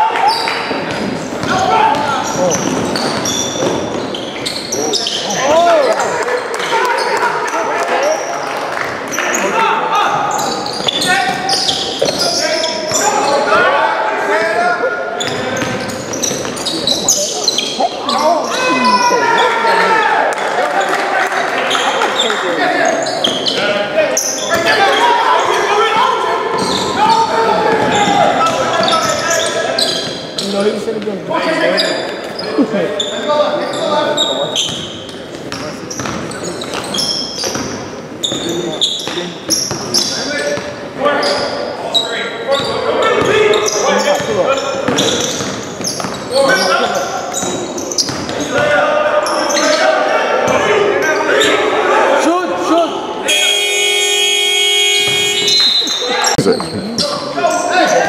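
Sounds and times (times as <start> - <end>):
basketball bouncing: 0.7 - 4.1, 27.7 - 29.0, 35.5 - 37.8, 53.5 - 55.6
people calling out: 9.2 - 30.5, 46.4 - 58.0.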